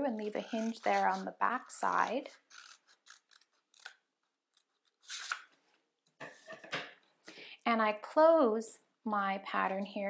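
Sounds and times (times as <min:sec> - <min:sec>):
scissors cutting paper: 0:00.2 - 0:05.5.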